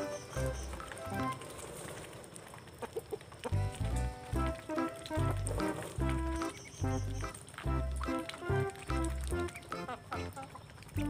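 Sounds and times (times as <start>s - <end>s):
chickens clucking: 2.6s - 11.0s
background music with bass line: 3.6s - 10.3s.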